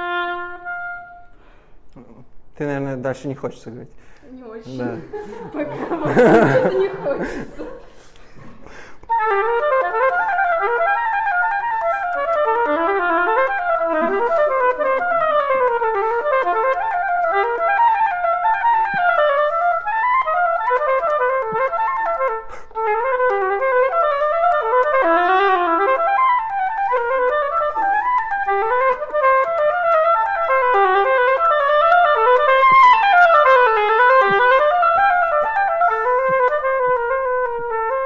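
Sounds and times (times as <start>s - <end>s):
oboe playing fast runs: 0.0s - 1.7s, 9.0s - 38.0s.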